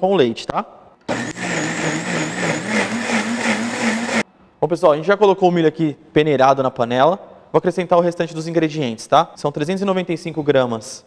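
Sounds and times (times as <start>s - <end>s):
blender motor running: 1.1s - 4.2s.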